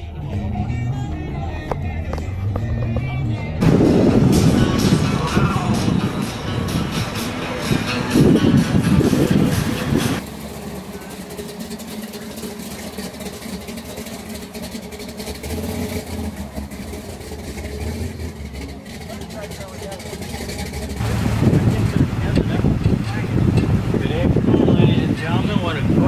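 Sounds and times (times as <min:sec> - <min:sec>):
car engine idling: 0:00.0 - 0:26.0
people talking: 0:04.3 - 0:10.2, 0:10.8 - 0:11.4, 0:18.6 - 0:20.2, 0:21.0 - 0:26.0.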